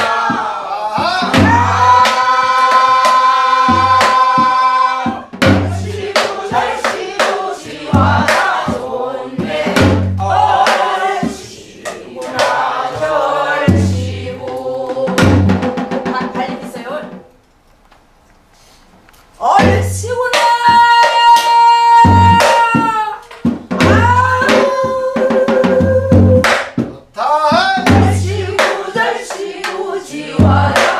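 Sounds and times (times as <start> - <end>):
group singing in unison: 0.0 - 16.1, 19.5 - 30.9.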